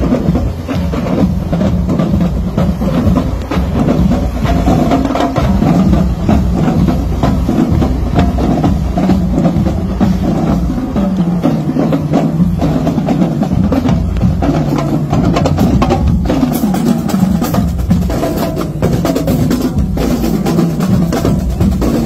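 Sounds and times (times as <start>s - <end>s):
marching band drums: 0.0s - 22.0s.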